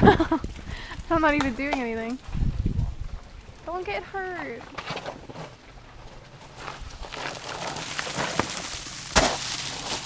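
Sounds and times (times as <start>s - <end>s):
grit crunching: 1.2s - 10.0s
shoes scraping down rock: 4.6s - 10.0s.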